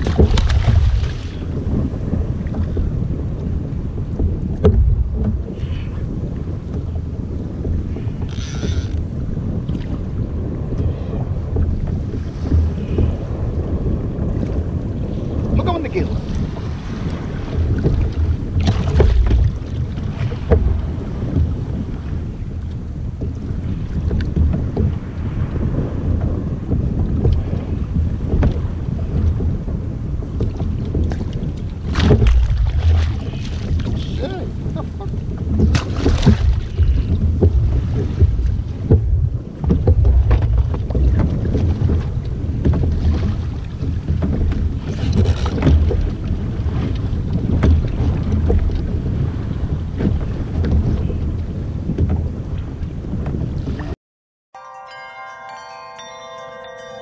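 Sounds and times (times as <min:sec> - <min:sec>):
water slapping around kayak: 0:00.0 - 0:54.0
wind buffeting microphone: 0:00.0 - 0:54.0.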